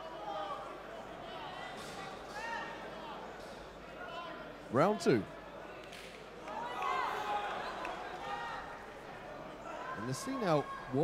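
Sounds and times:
crowd murmur in a hall: 0.0s - 11.0s.

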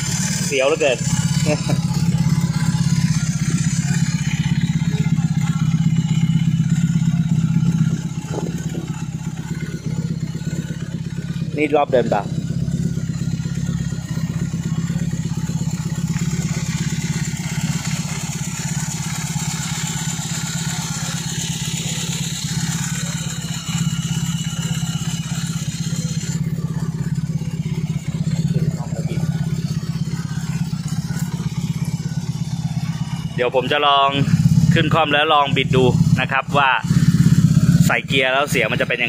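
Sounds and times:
motorcycle engine idling: 0.0s - 39.0s.

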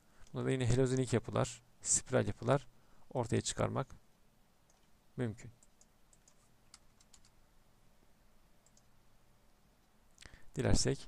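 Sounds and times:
faint computer clicks: 8.6s - 8.9s.

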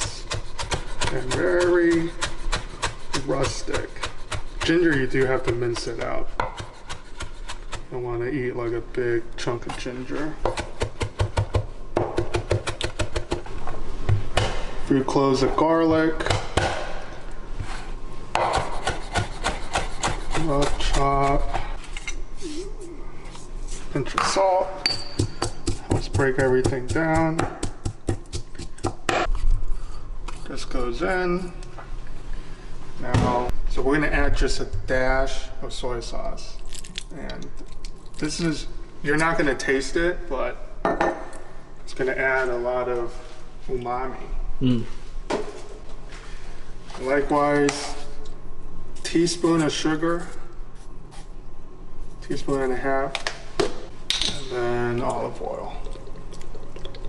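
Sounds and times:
knife scraping on cutting board: 18.5s - 22.7s.

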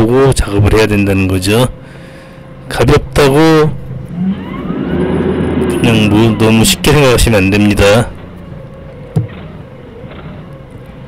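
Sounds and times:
forklift engine drone: 0.0s - 11.0s
thin steady whine: 0.0s - 11.0s.

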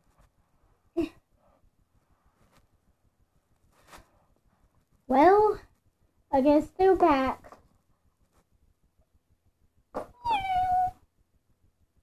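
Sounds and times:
cat meowing: 10.0s - 11.0s.

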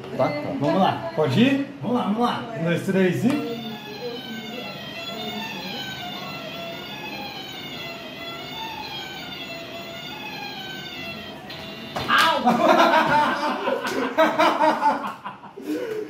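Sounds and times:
electronic toy tune: 3.3s - 12.9s.

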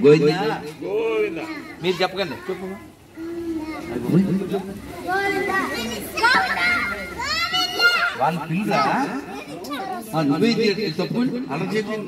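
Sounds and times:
young children talking: 0.7s - 10.8s.

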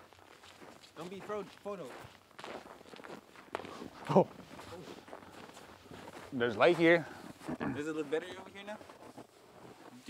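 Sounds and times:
footsteps in snow: 0.0s - 10.0s.

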